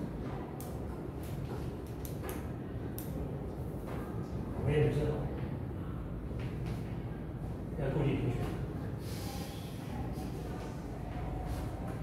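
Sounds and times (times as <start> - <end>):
room fans humming: 0.0 - 12.0.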